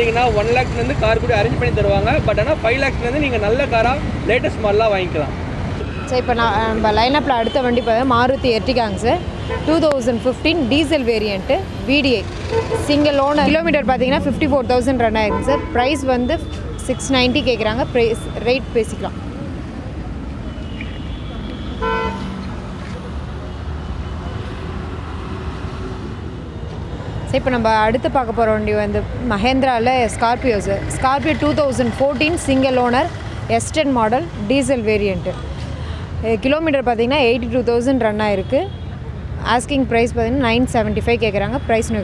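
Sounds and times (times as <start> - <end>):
person speaking: 12.8 - 19.1
vehicle horn toot: 15.2 - 17.5, 20.5 - 22.4.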